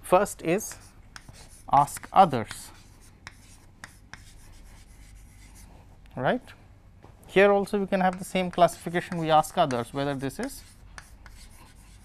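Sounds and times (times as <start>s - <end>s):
chalk tap: 0.6s - 5.6s, 8.0s - 12.0s
chalk scratching on chalkboard: 0.6s - 5.7s, 8.0s - 12.0s.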